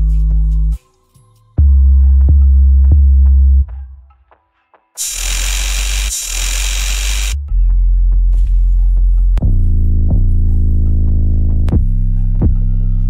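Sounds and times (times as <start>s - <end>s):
loud hiss: 5.0s - 7.4s.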